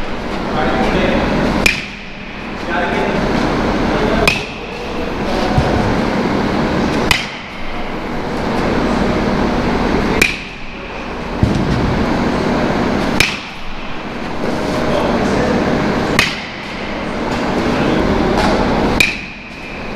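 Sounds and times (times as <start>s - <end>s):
bat hitting baseball: 1.6s - 2.2s, 4.2s - 4.6s, 7.0s - 7.9s, 10.2s - 10.6s, 13.0s - 13.9s, 16.1s - 17.4s, 18.4s - 19.8s.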